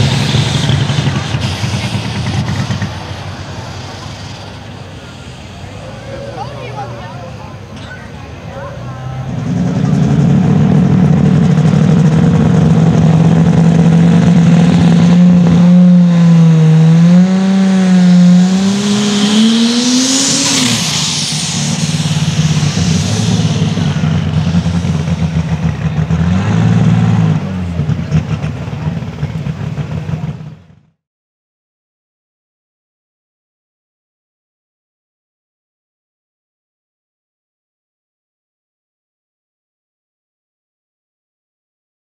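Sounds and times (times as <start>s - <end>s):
diesel tractor engine under load: 0.0s - 30.9s.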